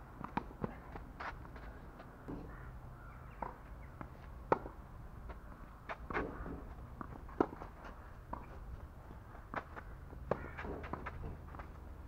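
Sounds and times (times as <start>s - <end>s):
tennis ball struck by racket: 3.4s - 4.8s, 5.9s - 8.5s, 9.5s - 11.5s.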